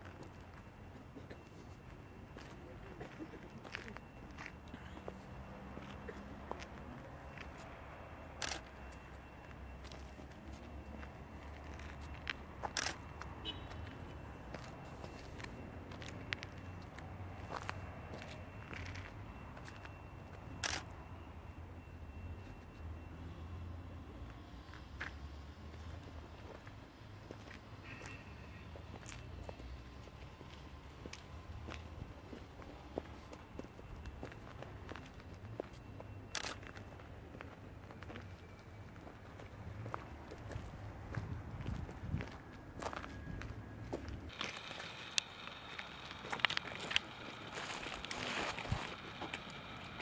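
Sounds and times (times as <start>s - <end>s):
footsteps on gravel: 43.9s - 50.0s.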